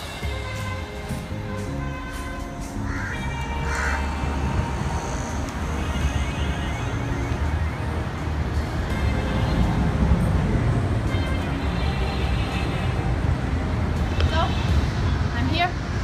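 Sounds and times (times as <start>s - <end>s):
music playing: 0.0s - 16.0s
low rumbling noise: 1.3s - 16.0s.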